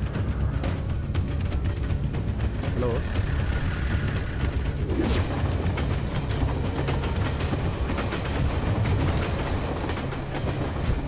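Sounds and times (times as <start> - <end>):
train rumble: 0.0 - 11.0
train wheels clickety-clack: 3.0 - 11.0.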